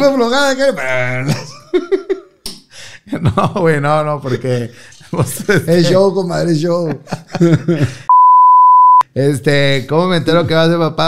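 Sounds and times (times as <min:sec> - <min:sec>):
man talking: 0:00.0 - 0:01.7, 0:03.0 - 0:08.0, 0:09.0 - 0:11.0
censor bleep: 0:08.1 - 0:09.0.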